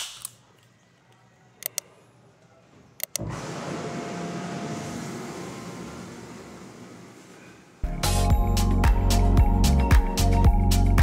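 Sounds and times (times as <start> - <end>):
whirlpool tub jets rushing: 3.2 - 7.4.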